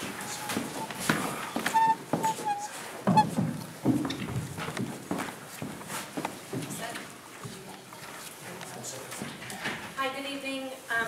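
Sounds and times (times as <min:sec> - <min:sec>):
faint indistinct voices: 0:06.6 - 0:11.0.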